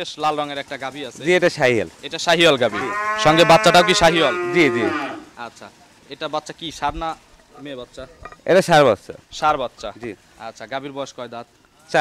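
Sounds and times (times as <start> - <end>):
cattle mooing: 2.5 - 5.4.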